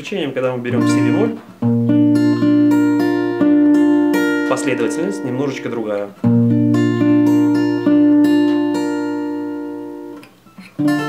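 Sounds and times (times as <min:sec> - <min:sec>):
acoustic guitar fingerpicking: 0:00.7 - 0:11.0.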